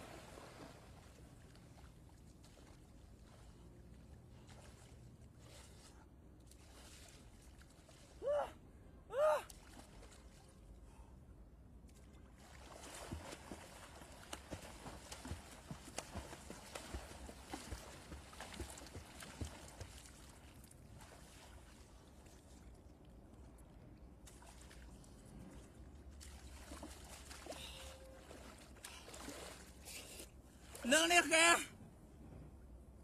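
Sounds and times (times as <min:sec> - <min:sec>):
swimmer splashing water: 0:00.0 - 0:05.9, 0:12.4 - 0:22.2, 0:26.1 - 0:31.6.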